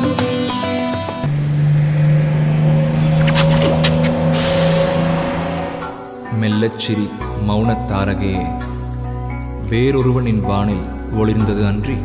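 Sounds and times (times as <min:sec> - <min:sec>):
vehicle engine humming: 0:01.2 - 0:06.5.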